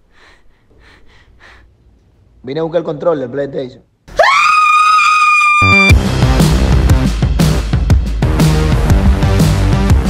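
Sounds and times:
woman screaming: 4.1 - 5.9
electronic music with heavy beat: 5.7 - 10.0.

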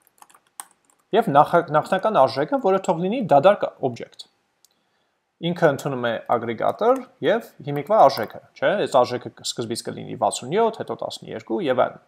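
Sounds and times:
keyboard or mouse clicks: 0.0 - 1.1
man speaking: 1.1 - 4.4, 5.4 - 12.0.

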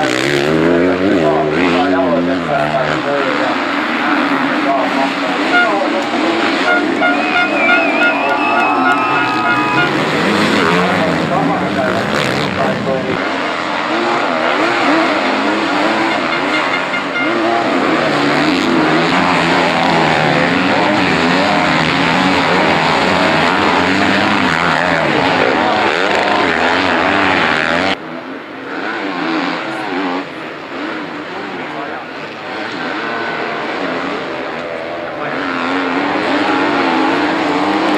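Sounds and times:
dirt bike engines revving: 0.0 - 37.9.

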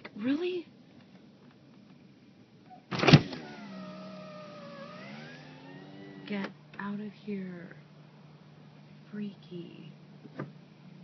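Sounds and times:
electric car window motor whining: 3.0 - 6.4.

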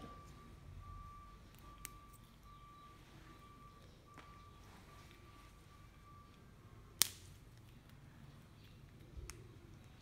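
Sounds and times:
green bean snapping: 7.0 - 7.4.

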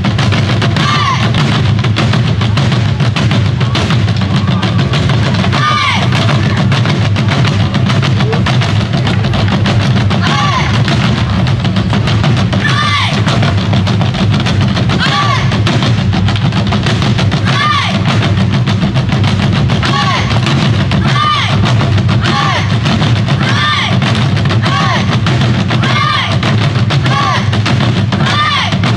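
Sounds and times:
barrel drums struck rapidly: 0.0 - 28.9.

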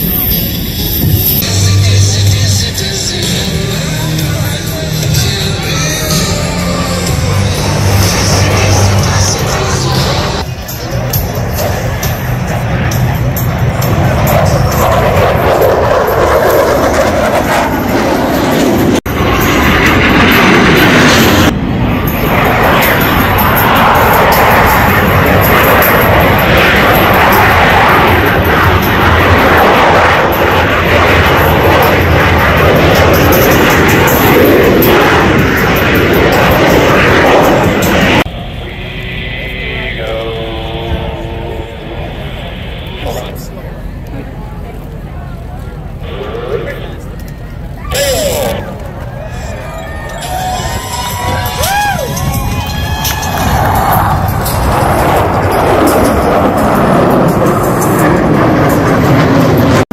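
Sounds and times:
jet flying low overhead: 0.0 - 59.9
music over loudspeakers: 1.4 - 10.4.

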